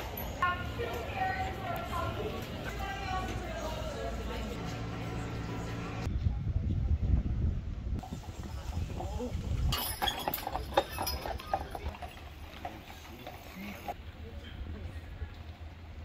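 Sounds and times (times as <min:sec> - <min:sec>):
horse hooves clip-clopping on pavement: 0:00.0 - 0:04.9, 0:08.0 - 0:14.0
people talking in street: 0:00.0 - 0:16.0.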